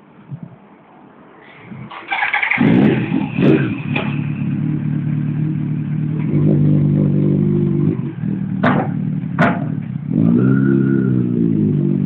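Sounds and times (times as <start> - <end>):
electric starter cranking: 1.9 - 2.7
motorcycle engine running loudly: 2.6 - 12.0.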